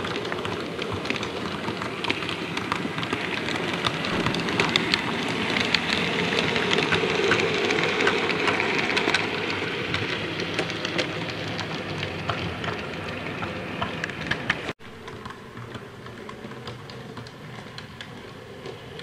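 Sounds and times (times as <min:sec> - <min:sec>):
model train rumbling: 0:00.0 - 0:19.0
wheels clicking over rail joints: 0:00.0 - 0:19.0.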